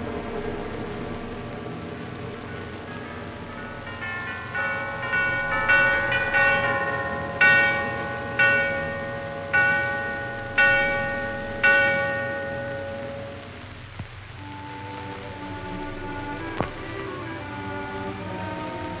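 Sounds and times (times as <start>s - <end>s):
bells ringing: 2.5s - 13.7s.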